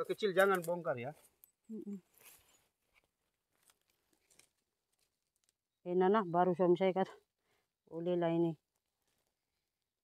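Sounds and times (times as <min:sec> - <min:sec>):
leaves rustling and crackling: 0:02.0 - 0:05.6.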